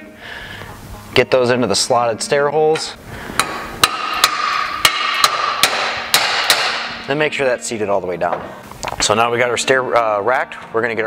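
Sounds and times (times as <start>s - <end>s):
rubber mallet striking metal rail: 3.4s - 7.0s.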